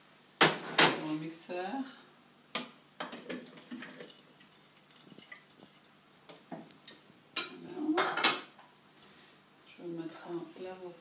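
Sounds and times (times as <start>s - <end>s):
clatter of kitchenware: 7.4s - 8.5s.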